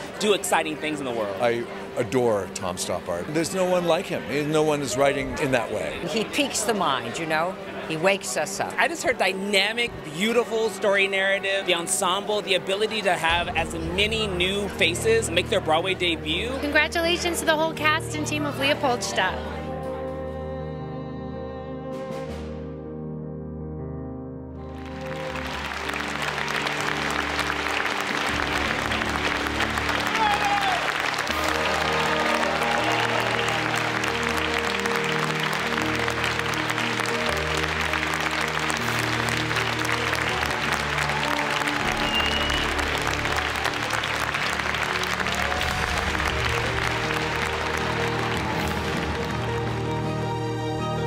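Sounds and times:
soft music with sustained tones: 0:00.0 - 0:51.0
audience applauding: 0:24.6 - 0:50.9.

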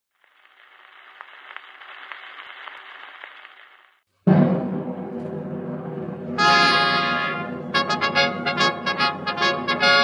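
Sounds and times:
record surface hiss: 0:00.1 - 0:04.0
music: 0:04.2 - 0:10.0.

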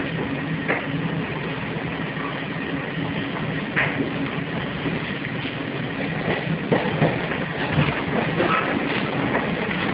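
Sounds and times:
train motor hum: 0:00.0 - 0:09.9
wheel and track noise: 0:00.0 - 0:09.9.

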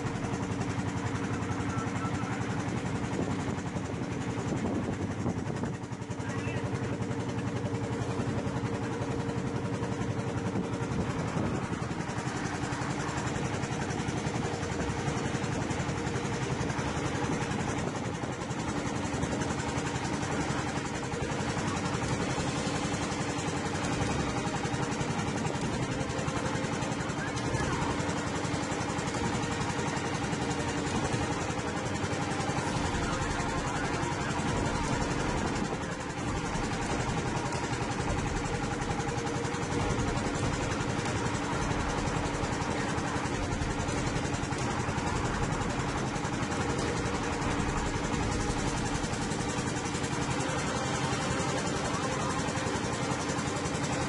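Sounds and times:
boat engine humming: 0:00.0 - 0:54.0.

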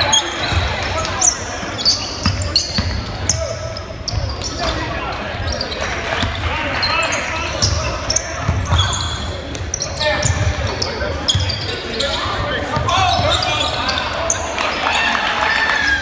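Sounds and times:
sneaker squeaks: 0:00.0 - 0:14.8.

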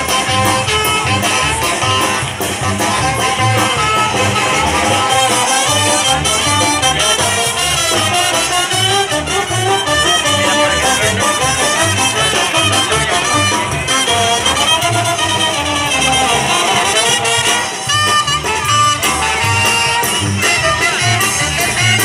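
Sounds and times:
latin brass dance music: 0:00.0 - 0:22.0.

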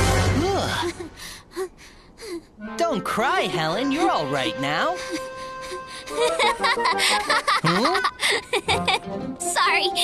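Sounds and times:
girl gasping: 0:00.8 - 0:02.6.

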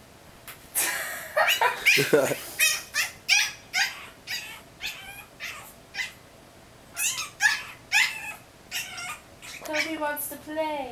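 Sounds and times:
puppy yapping: 0:01.5 - 0:06.2, 0:06.9 - 0:10.0.

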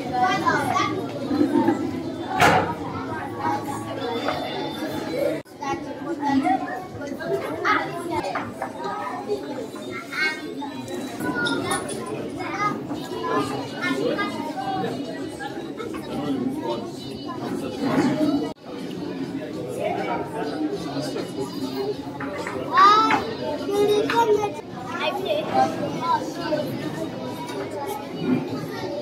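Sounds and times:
children chattering: 0:00.0 - 0:29.0.

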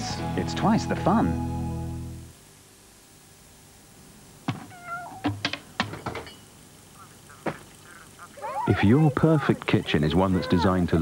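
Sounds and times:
cat meowing: 0:04.6 - 0:05.3, 0:07.9 - 0:10.8.

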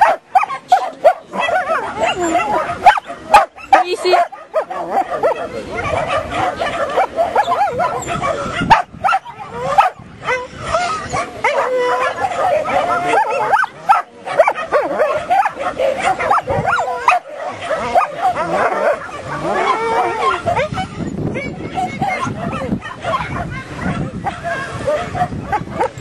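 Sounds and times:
dog barking and yipping: 0:00.0 - 0:26.0.

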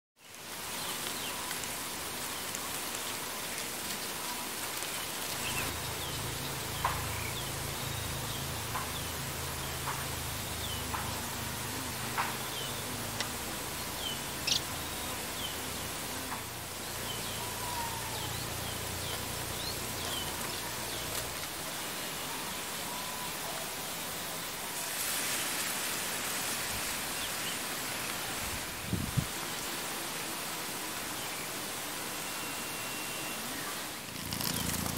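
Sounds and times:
even hiss: 0:00.2 - 0:34.9.

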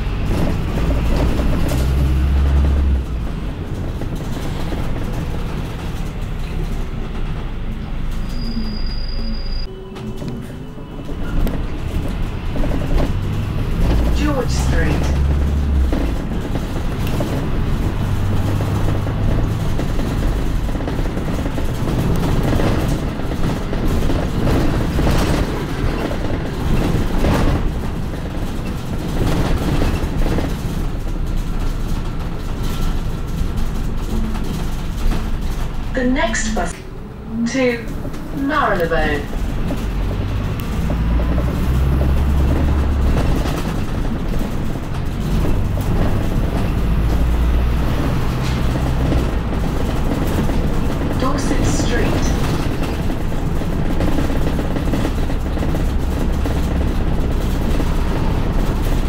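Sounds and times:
bus engine and road rumble: 0:00.0 - 0:59.0
rattles: 0:11.0 - 0:36.2.

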